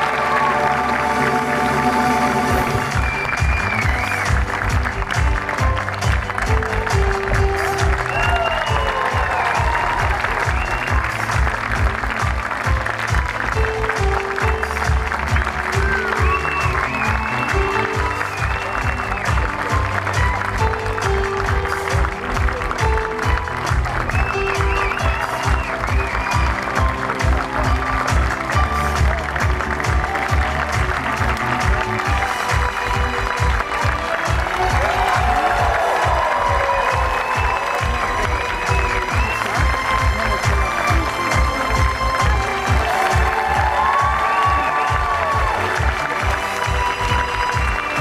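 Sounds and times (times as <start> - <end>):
audience applauding: 0.0 - 48.0
music: 0.0 - 48.0.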